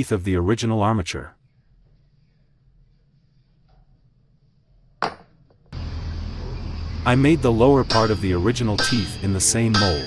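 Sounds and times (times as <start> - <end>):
steady hum: 5.7 - 10.0.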